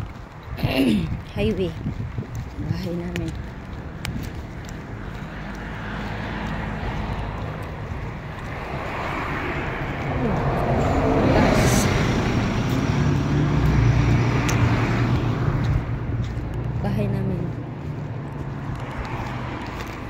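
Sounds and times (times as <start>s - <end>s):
cars passing on a road: 0.0s - 20.0s.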